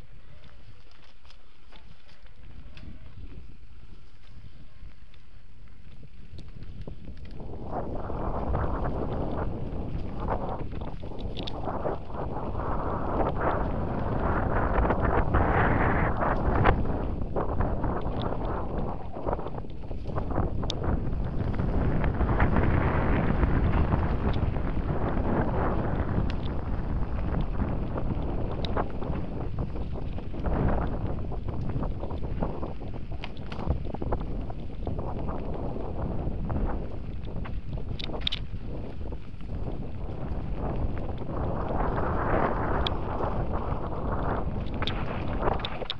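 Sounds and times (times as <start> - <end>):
bike clicks and rattles: 0.0 - 45.9
tyres rumbling over dirt trail: 0.0 - 45.9
wind buffeting microphone: 0.0 - 45.9.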